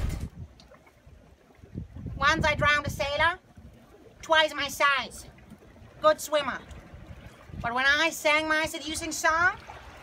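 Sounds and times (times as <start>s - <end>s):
wind rumble: 0.0s - 4.0s
sea water: 0.0s - 10.0s.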